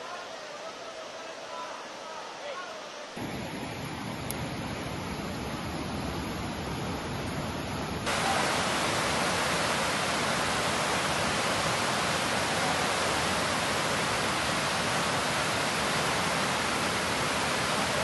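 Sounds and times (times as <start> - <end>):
river rapids rushing: 8.0 - 18.0.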